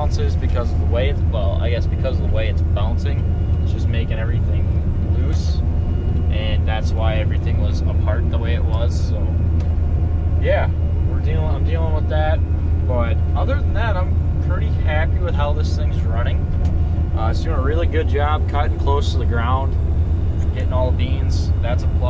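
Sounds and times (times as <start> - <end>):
man talking: 0.0 - 5.6, 6.3 - 9.4, 10.4 - 16.5, 17.1 - 19.8, 20.4 - 22.0
combine harvester droning: 0.0 - 22.0.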